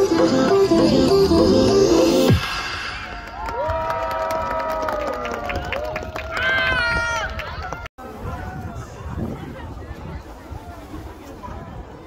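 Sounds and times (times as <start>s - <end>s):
dance music: 0.0s - 3.2s
audience cheering and whooping: 3.3s - 7.6s.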